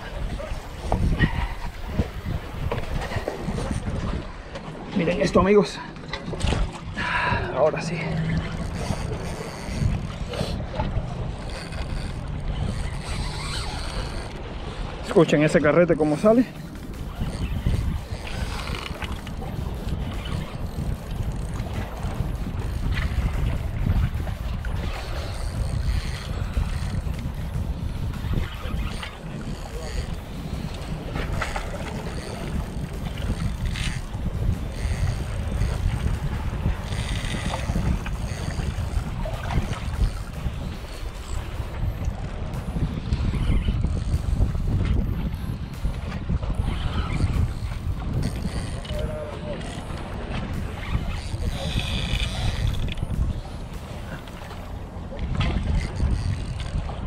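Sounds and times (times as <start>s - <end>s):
fishing reel clicking and whirring: 0.0s - 4.3s, 6.4s - 57.0s
wind buffeting microphone: 0.0s - 57.0s.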